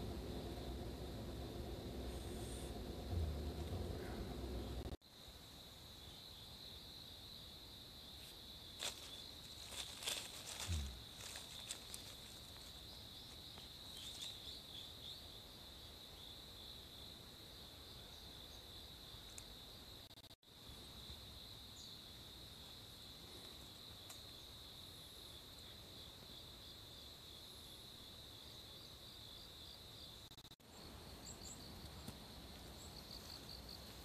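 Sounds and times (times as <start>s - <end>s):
insects trilling: 0.0s - 34.0s.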